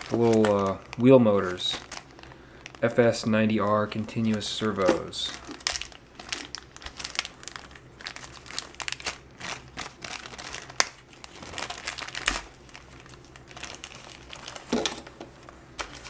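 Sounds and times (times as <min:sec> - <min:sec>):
plastic bag crinkling: 0:00.0 - 0:15.2, 0:15.8 - 0:16.0.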